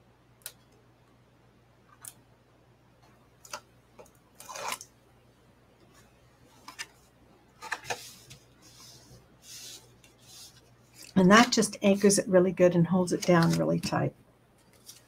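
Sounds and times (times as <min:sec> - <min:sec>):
cardstock rustle: 0:07.6 - 0:11.6, 0:13.1 - 0:13.9, 0:14.6 - 0:15.0.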